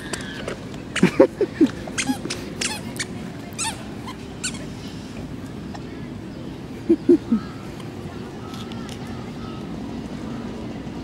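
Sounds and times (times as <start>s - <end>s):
squeaky sandals squeaking: 1.9s - 4.7s.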